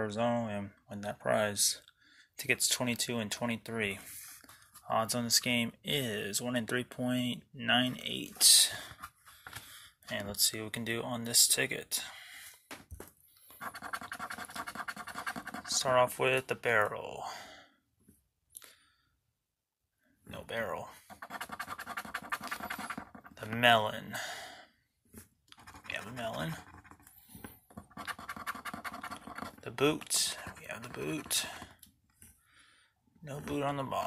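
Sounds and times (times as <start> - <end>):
coin scraping lottery ticket: 13.6 - 15.8, 21.1 - 23.4, 27.8 - 31.5.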